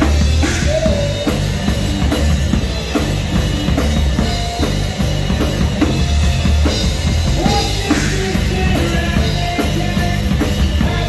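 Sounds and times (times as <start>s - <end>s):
amplified electric guitar: 0.0s - 11.0s
bass drum and snare beat: 0.0s - 11.0s.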